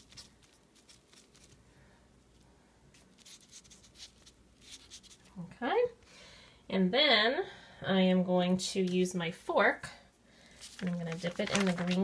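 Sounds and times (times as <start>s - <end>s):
cotton swab swishing on paper: 0.0s - 1.6s, 2.9s - 5.4s.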